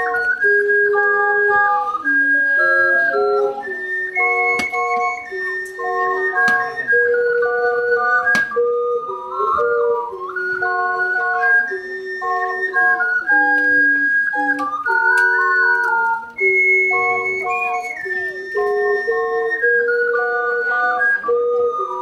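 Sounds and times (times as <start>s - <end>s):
ocarinas playing in harmony: 0.0s - 22.0s.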